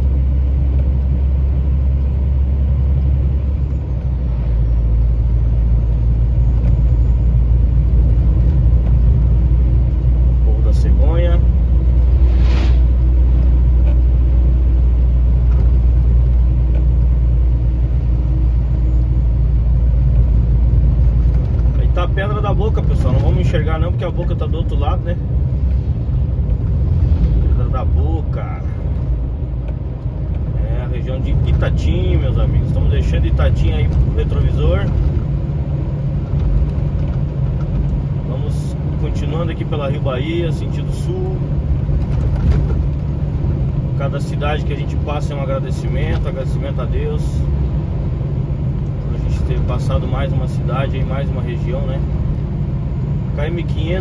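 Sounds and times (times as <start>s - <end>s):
truck engine and tyres droning: 0.0s - 54.0s.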